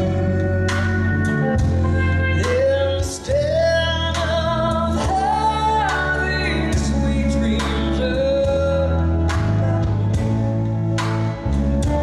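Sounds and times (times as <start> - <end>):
live country band: 0.0 - 12.0
woman singing: 2.3 - 8.8.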